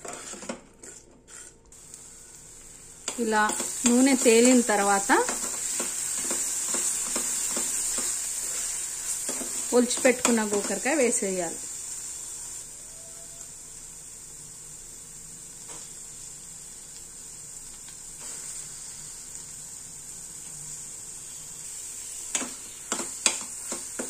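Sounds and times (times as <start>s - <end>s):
paste sizzling in a steel pan: 0.0s - 24.0s
spoon scraping a pan: 3.1s - 10.9s.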